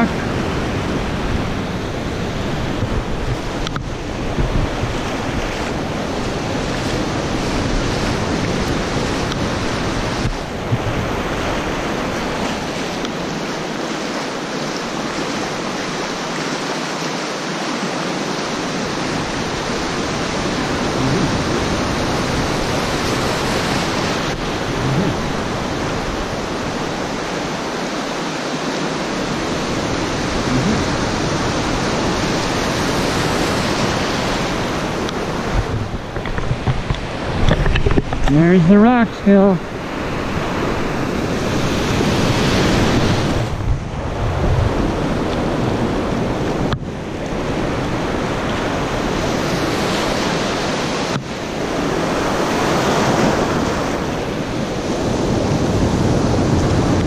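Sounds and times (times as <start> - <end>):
wind rumbling on microphone: 0.0 - 16.5, 18.1 - 57.0
ocean surf washing over shallows: 0.0 - 57.0.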